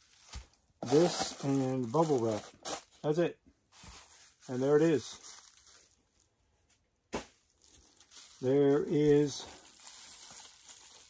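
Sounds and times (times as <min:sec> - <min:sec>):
bubble wrap crinkle: 0:00.0 - 0:11.0
faint bubble wrap rustling: 0:00.0 - 0:11.0.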